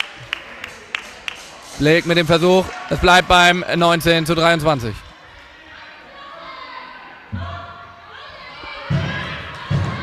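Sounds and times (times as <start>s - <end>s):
distant voices in sports hall: 0.0s - 10.0s.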